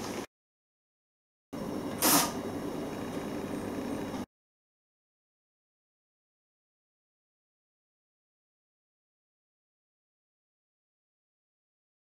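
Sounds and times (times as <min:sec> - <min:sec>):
low background hum: 0:01.6 - 0:04.3.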